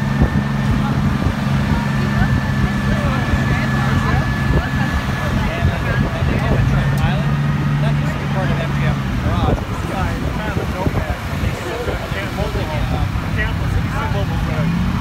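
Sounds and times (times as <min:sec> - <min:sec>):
people chattering: 0:00.0 - 0:15.0
vehicle engine humming: 0:00.0 - 0:15.0.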